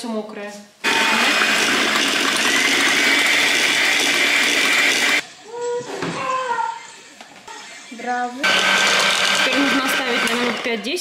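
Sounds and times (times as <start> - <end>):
electric hand mixer whisking batter: 0.9 - 5.2, 8.4 - 11.0.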